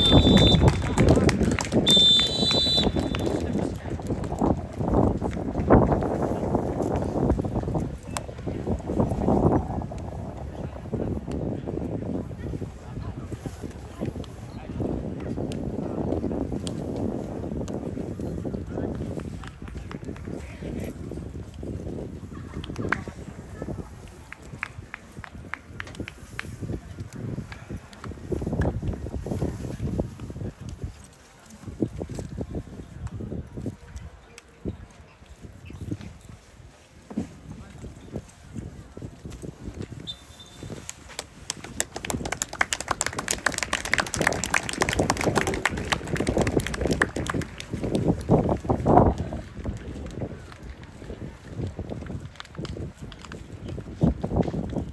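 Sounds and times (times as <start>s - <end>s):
hand clapping: 0.0s - 4.4s, 40.7s - 50.6s
wind buffeting microphone: 0.0s - 54.9s.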